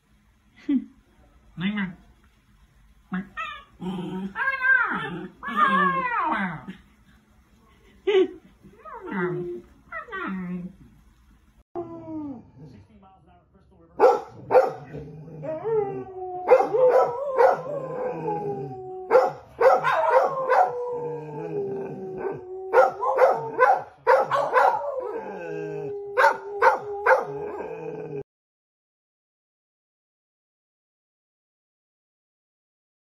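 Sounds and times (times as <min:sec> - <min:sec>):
dog barking: 0:14.0 - 0:14.9, 0:16.5 - 0:17.7, 0:19.1 - 0:20.8, 0:22.7 - 0:25.0, 0:26.2 - 0:27.4
dogs howling: 0:14.1 - 0:28.2.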